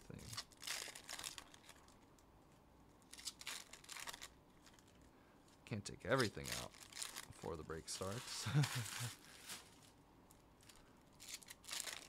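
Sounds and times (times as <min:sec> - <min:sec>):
card pack wrapper crinkling: 0:00.1 - 0:02.0, 0:03.0 - 0:05.0, 0:06.1 - 0:10.0, 0:10.6 - 0:12.0.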